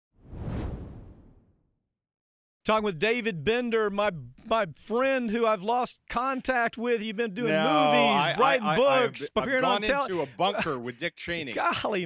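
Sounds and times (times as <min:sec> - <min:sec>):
whoosh with deep low end: 0:00.2 - 0:01.6.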